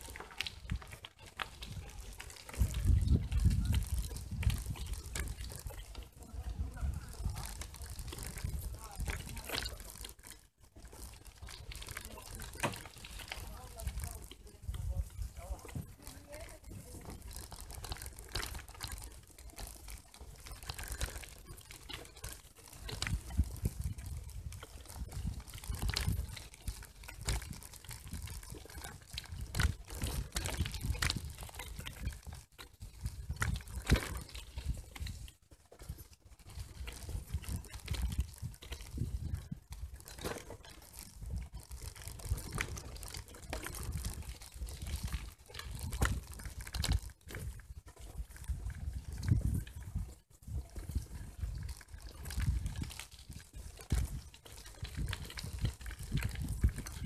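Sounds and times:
bicycle rattling: 0.0s - 57.0s
bicycle tyres crunching on gravel: 0.0s - 57.0s.

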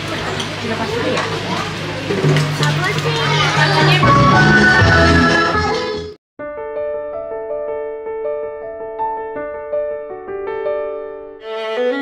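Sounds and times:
children and adults chattering: 0.0s - 4.7s
background music: 3.3s - 6.2s.

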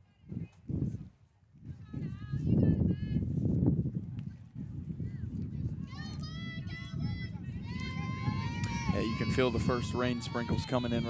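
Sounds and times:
players calling and chanting: 6.1s - 11.0s.

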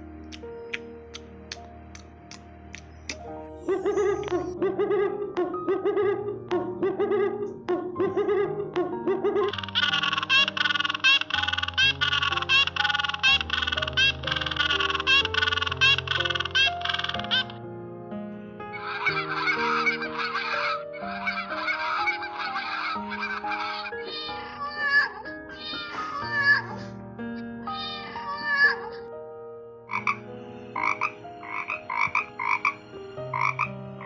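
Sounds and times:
soft background music: 0.0s - 34.0s
bird calls: 9.5s - 17.6s.

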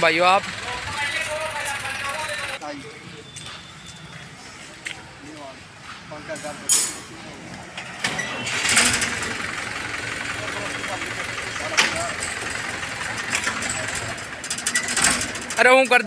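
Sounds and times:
diesel engine cranking: 0.0s - 2.8s, 6.4s - 16.0s.

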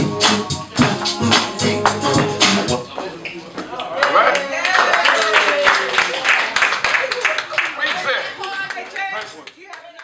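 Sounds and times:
people clapping: 1.0s - 2.0s, 3.6s - 10.0s
people talking: 7.2s - 10.0s.

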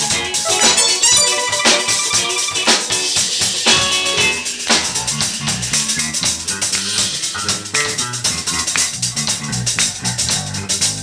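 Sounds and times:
electric guitars: 0.0s - 10.1s
drum kit with cymbals: 0.0s - 11.0s.

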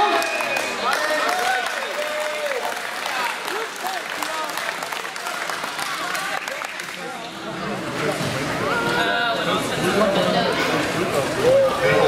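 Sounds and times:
spectators clapping: 0.0s - 7.3s.

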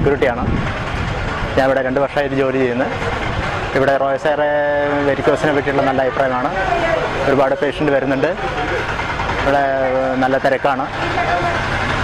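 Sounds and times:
vehicle engine noise: 0.0s - 12.0s
man speaking: 3.8s - 8.8s.

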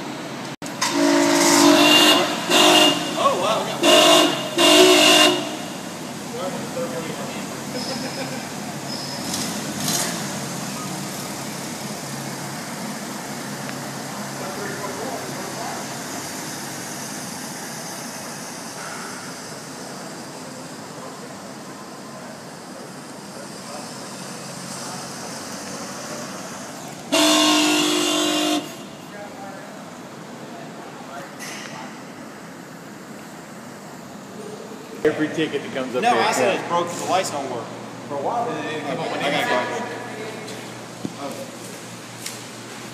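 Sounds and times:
steady background noise: 0.0s - 42.9s
car horn blaring: 0.8s - 6.1s, 27.1s - 29.1s.

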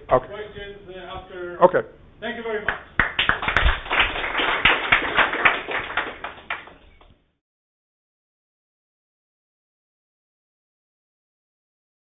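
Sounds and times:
audience applauding: 3.0s - 7.1s.

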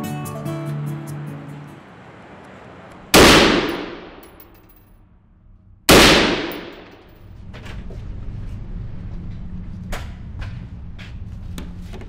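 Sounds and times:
background music: 0.0s - 2.0s
gunshots echoing: 3.2s - 4.6s, 5.9s - 7.1s.

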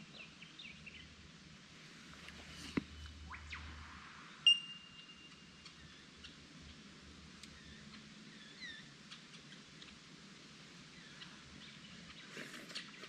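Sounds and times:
faint bird chirps: 2.1s - 6.9s, 7.5s - 9.8s, 10.9s - 13.0s.

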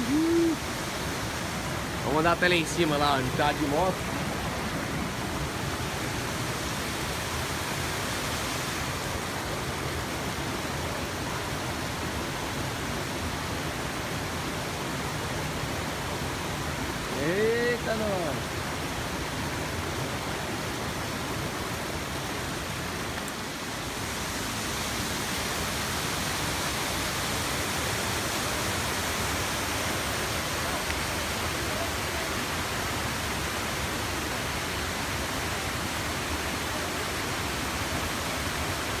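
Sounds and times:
waterfall roaring over rock: 0.0s - 39.0s.

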